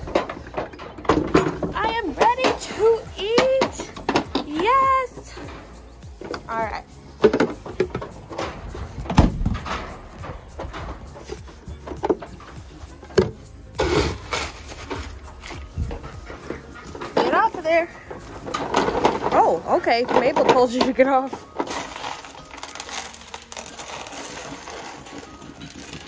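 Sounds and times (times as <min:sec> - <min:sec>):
knocks and clatter: 0:00.0 - 0:04.6, 0:07.2 - 0:14.0, 0:14.8 - 0:21.2.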